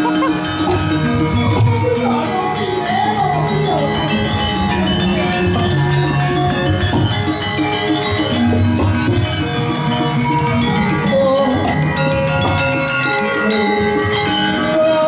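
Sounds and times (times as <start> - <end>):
gamelan playing: 0.0 - 15.0.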